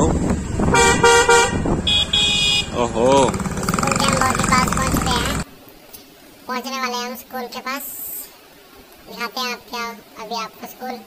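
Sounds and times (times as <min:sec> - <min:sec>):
motorcycle engines and road noise: 0:00.0 - 0:05.6
vehicle horns honking: 0:00.7 - 0:03.5
higher-pitched horn beeps: 0:00.8 - 0:02.8.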